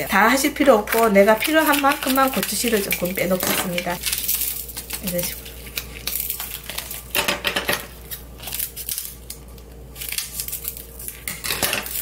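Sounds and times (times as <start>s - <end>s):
scissors cutting dried peppers: 0.9s - 7.0s.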